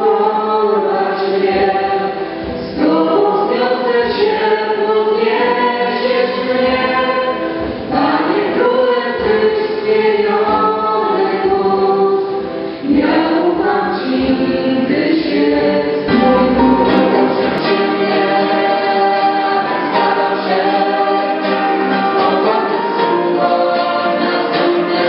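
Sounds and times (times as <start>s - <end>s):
group singing worship song: 0.0s - 25.0s.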